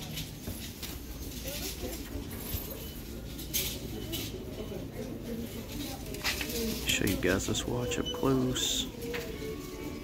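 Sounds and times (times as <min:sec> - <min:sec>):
low voices murmuring: 0:01.0 - 0:10.0.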